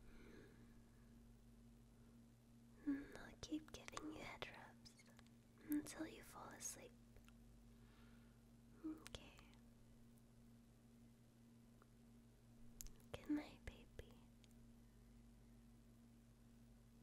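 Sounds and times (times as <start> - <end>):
faint steady hum: 0.0 - 17.0
woman whispering softly: 2.8 - 7.0, 8.8 - 9.7, 12.9 - 14.4.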